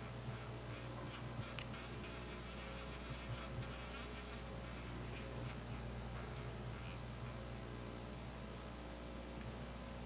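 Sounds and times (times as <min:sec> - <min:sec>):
faint small ticks and scratches: 0:00.0 - 0:07.5
low electrical hum: 0:00.0 - 0:10.0.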